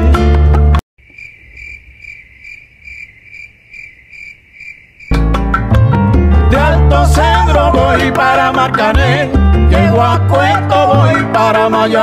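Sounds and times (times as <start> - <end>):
cricket chirping: 1.0 - 5.2
latin music with guitar and singing: 5.1 - 12.0.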